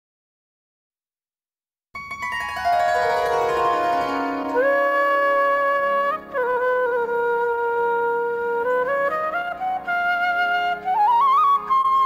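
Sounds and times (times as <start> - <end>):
held instrumental melody note: 2.0 - 6.0.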